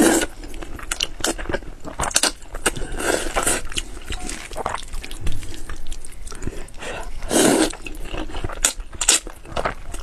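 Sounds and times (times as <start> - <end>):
slurping noodles: 0.0 - 0.4, 2.2 - 5.7, 6.3 - 9.2
chewing and mouth smacks: 0.2 - 6.8.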